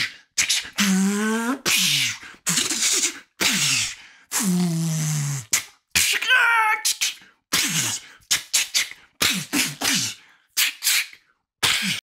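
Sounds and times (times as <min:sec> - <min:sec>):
man crying out: 0:06.1 - 0:07.0
man making mouth whooshes and hits: 0:07.0 - 0:12.0.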